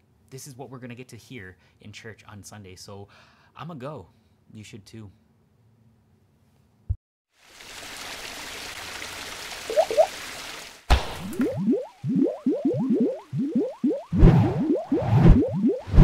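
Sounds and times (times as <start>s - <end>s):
upward-sliding blips: 9.7s - 10.1s, 11.4s - 16.0s.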